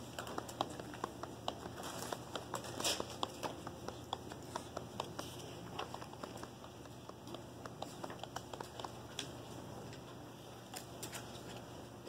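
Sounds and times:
low room hum: 0.0 - 12.0
light clicks and taps: 0.1 - 9.3.

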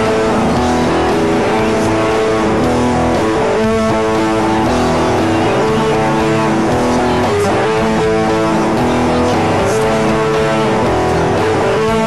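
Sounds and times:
electric guitar rock riff: 0.0 - 12.0.

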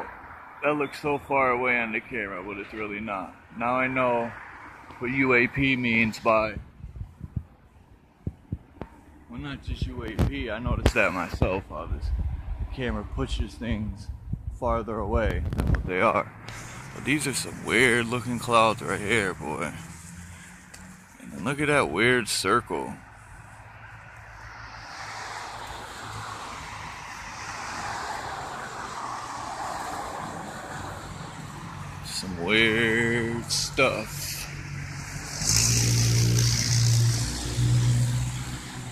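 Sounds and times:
steady low rumble: 6.5 - 19.1
passing vehicle rushing: 10.9 - 14.4, 15.2 - 38.9.

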